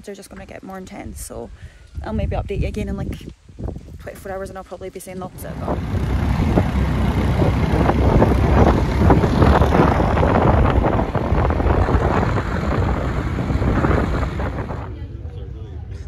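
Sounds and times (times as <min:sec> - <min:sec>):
wind buffeting microphone: 0:00.0 - 0:16.0
low rumble of motorbike ride: 0:05.2 - 0:16.0.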